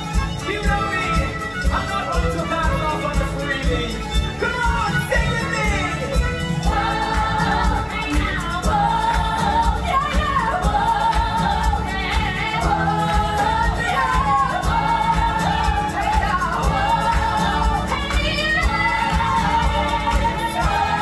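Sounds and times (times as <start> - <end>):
band with bowed strings: 0.0 - 21.0
cast singing together: 6.2 - 21.0.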